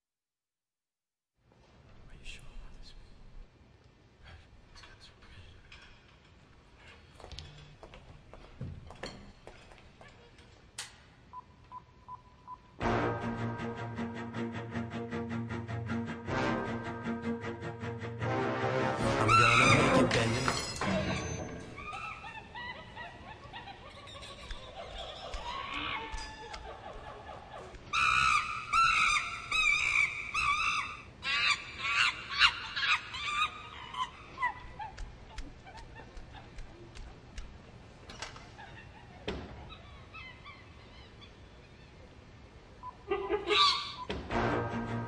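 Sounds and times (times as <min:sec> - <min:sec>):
chimpanzee screeching: 0:19.0 - 0:36.2, 0:38.6 - 0:42.2, 0:43.1 - 0:44.1.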